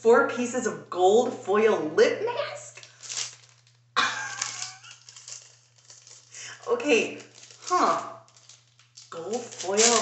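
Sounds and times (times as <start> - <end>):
plastic packet crinkling: 2.7 - 10.0.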